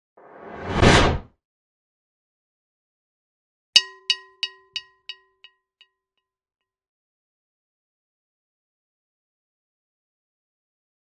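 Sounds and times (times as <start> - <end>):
whoosh sound effect: 0.2 - 1.3.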